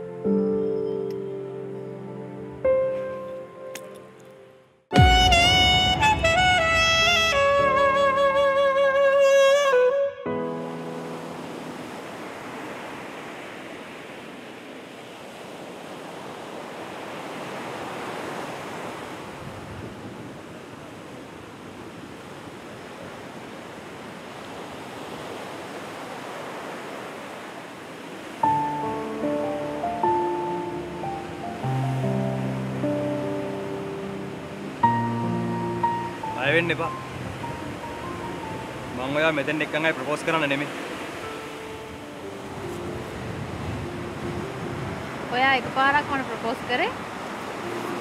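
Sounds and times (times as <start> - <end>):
soft music with picked notes: 0.0 - 11.8, 28.4 - 46.3, 47.3 - 48.0
ocean waves breaking: 4.9 - 48.0.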